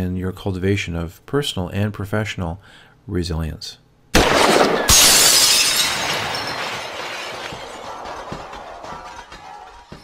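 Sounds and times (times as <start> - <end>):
crumbling fragments scattering: 4.2 - 8.0
loud shattering crash: 4.2 - 8.0.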